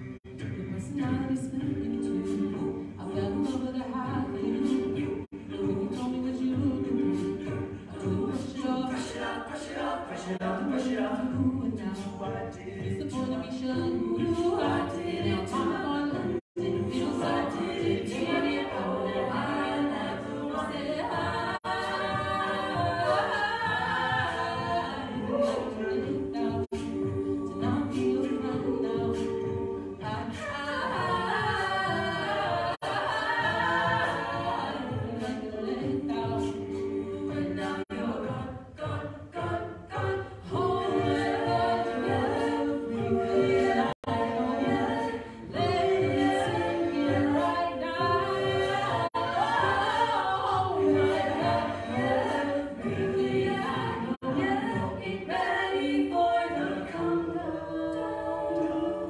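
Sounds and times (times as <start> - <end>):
a cappella group singing: 0.0 - 59.0.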